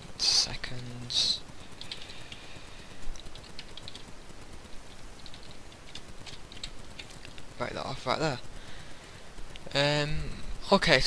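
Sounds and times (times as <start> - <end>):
keyboard typing: 1.8 - 2.6, 3.2 - 4.2, 4.9 - 7.5.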